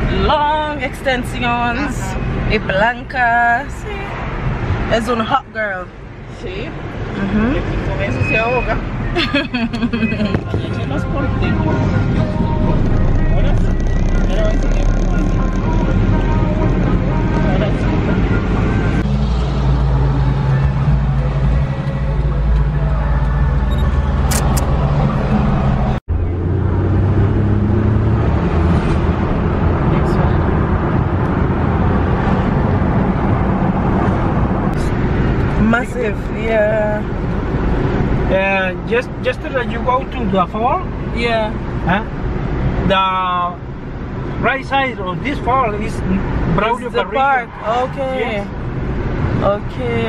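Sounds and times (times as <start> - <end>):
car cabin engine and road noise: 0.0 - 50.0.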